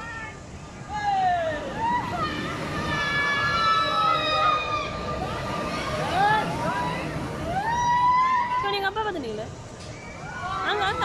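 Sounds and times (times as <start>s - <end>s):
crowd voices: 0.0s - 11.0s
long high-pitched scream: 1.8s - 5.2s.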